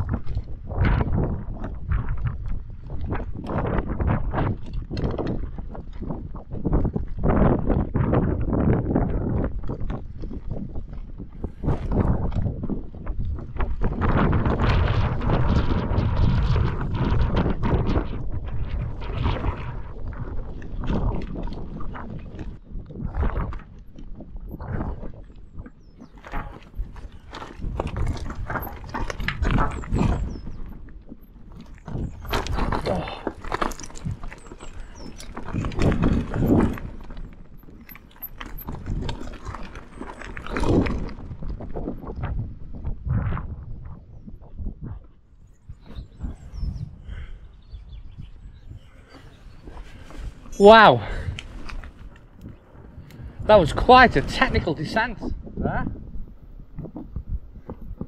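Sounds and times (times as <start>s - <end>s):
bike rattling: 0.0s - 43.0s, 45.4s - 55.3s
bike tyres crunching over rocks: 0.0s - 43.0s, 48.1s - 55.6s
wind buffeting microphone: 0.0s - 58.0s.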